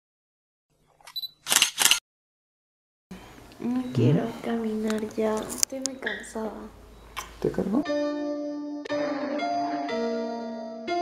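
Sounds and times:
camera shutter clicks: 1.1 - 2.0.

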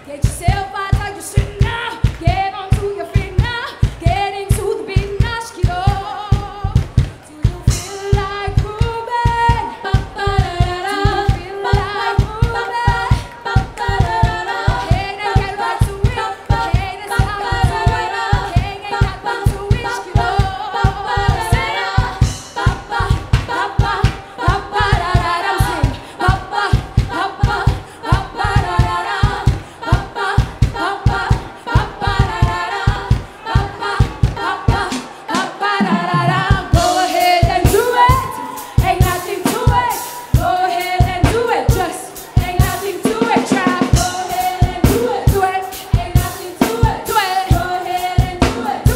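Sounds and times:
backing singers: 0.0 - 48.9
woman singing lead vocal: 0.0 - 48.9
low drum beat: 0.2 - 48.9.

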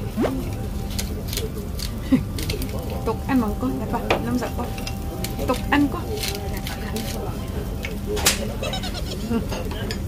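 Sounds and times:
low room hum: 0.0 - 10.0
chopsticks clinking against bowl: 0.9 - 10.0.

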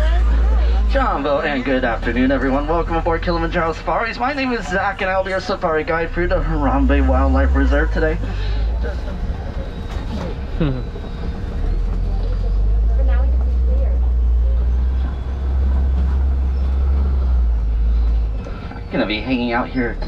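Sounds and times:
truck driving low rumble: 0.0 - 20.0.

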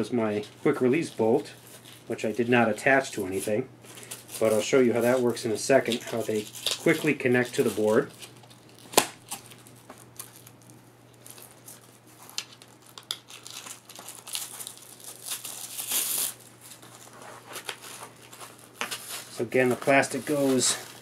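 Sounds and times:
velcro ripping apart: 5.8 - 10.6, 11.2 - 21.0.

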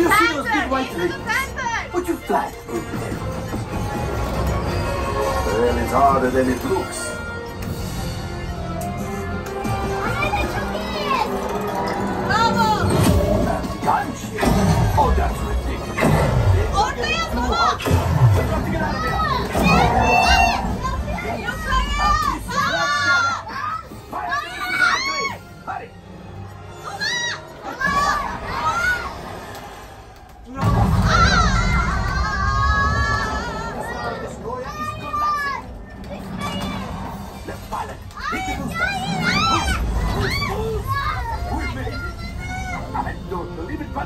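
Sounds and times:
children shrieking and squealing: 18.8 - 25.4, 26.8 - 29.4, 30.7 - 37.1, 38.1 - 43.0.

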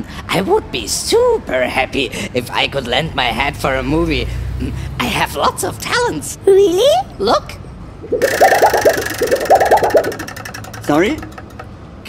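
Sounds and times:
rapid buzzing rattle: 8.1 - 11.7.

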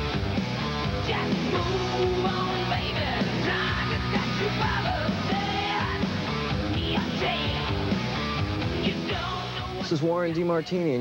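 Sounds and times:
hard rock band playing: 0.0 - 11.0
loud lead vocal: 0.0 - 11.0.

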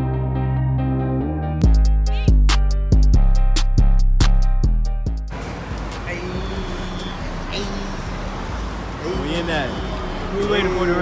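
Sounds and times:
road traffic rumble: 5.2 - 11.0
faint voices: 5.4 - 11.0.

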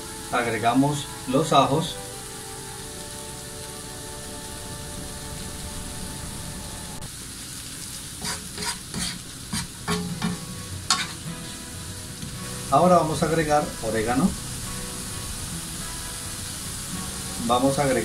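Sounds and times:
onion and garlic sizzling in oil: 0.0 - 18.0
wooden spatula scraping pan: 8.2 - 11.6.

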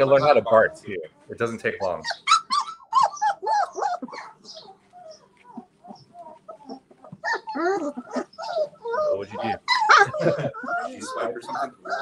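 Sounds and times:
puppies whining and yelping: 1.8 - 12.0.

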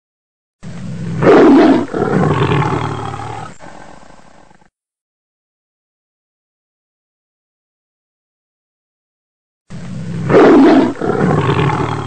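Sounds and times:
rough low growl-like sound: 0.6 - 4.7, 9.7 - 12.0.

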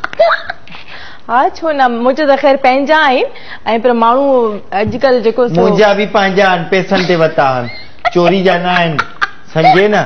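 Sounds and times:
woman laughing: 0.0 - 0.7, 7.0 - 10.0.

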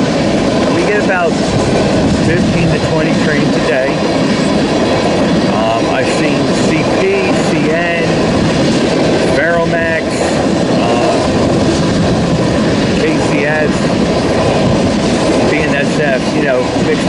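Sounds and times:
freight train wheels rumbling on rails: 0.0 - 17.0.

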